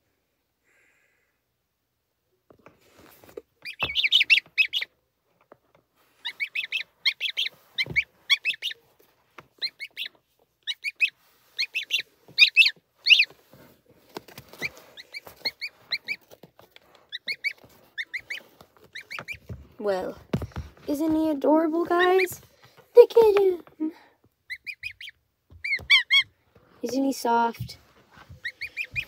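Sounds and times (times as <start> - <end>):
gosling peeping: 3.3 - 5.0, 6.1 - 13.5, 14.1 - 23.6, 24.4 - 29.0
soft thumps: 18.2 - 23.9.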